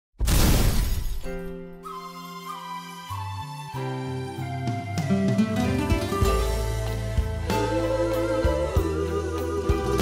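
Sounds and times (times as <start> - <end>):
loud crash sound effect: 0.2 - 1.4
slow background music: 1.4 - 10.0.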